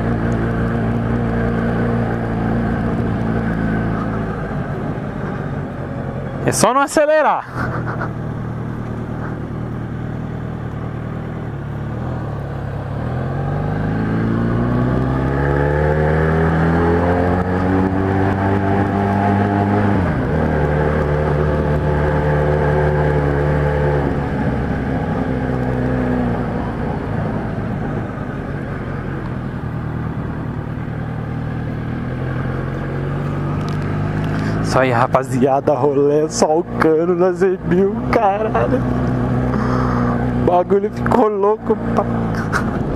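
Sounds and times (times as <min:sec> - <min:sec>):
motorcycle engine revving: 0:00.0 - 0:06.6, 0:07.5 - 0:42.9.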